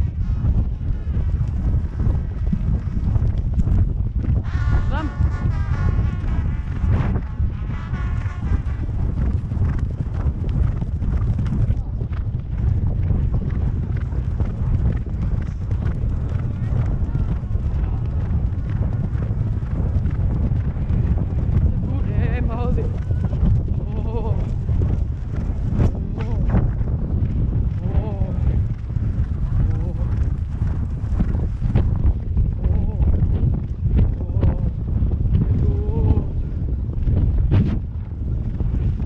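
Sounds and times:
heavy low rumble: 0:00.0 - 0:39.0
horse hoofbeats on grass: 0:00.4 - 0:39.0
person laughing: 0:23.7 - 0:24.5.

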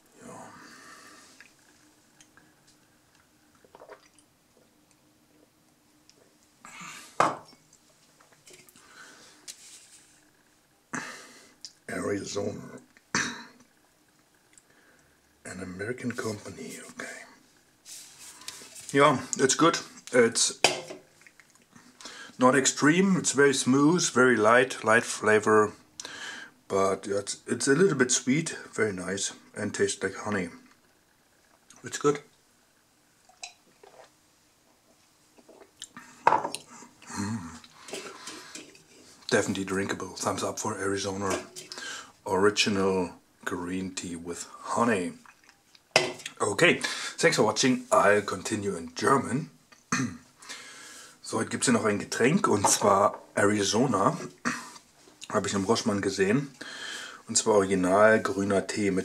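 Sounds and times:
person sipping and swallowing: 0:03.1 - 0:04.7, 0:35.4 - 0:39.3
glass mug knocking on wooden floor: 0:07.2 - 0:07.5.

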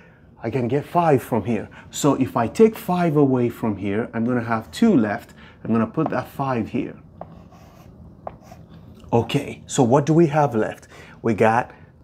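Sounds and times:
chalk tapping on blackboard: 0:05.9 - 0:06.4, 0:07.1 - 0:08.8
chalk writing on blackboard: 0:07.1 - 0:08.8.

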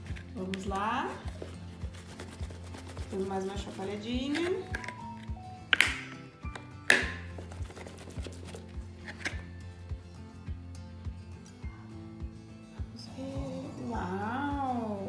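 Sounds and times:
background music with steady beat: 0:00.0 - 0:15.0.

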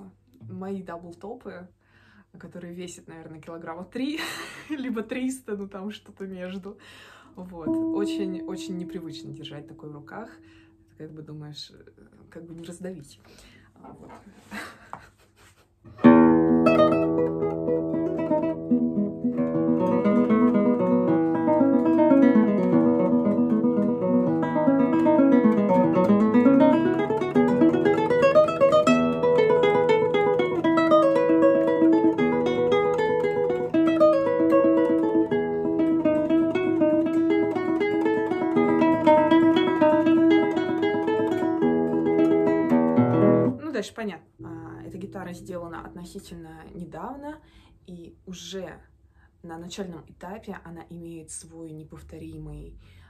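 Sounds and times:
classical guitar fingerpicking: 0:15.9 - 0:43.6, 0:44.4 - 0:46.3.

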